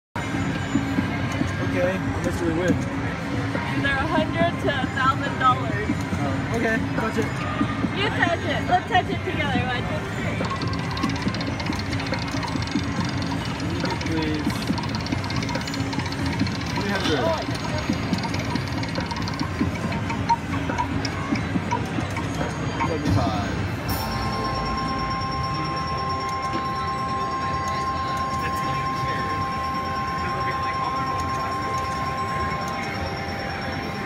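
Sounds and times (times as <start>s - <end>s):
jingling slot machine sounds: 9.1s - 34.0s
steady electronic tone: 23.7s - 34.0s.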